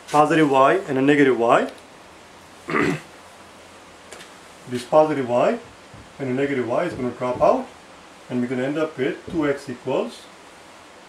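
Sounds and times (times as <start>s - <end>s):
man coughing: 2.7s - 3.1s.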